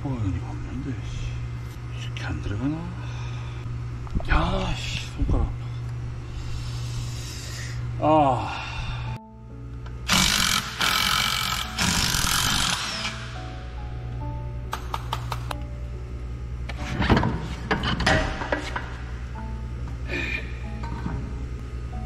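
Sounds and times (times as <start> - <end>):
background music: 6.3 - 22.0
cordless drill running: 10.1 - 13.4.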